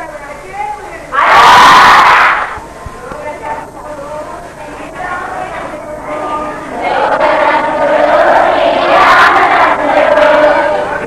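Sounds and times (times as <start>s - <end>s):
loud shout of voices: 1.1s - 2.6s.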